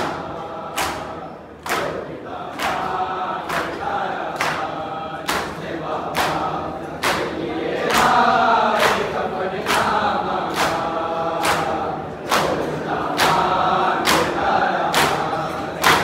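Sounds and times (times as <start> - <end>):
men chanting in chorus: 0.0 - 16.0
hands slapping chests: 0.7 - 8.2, 8.8 - 16.0.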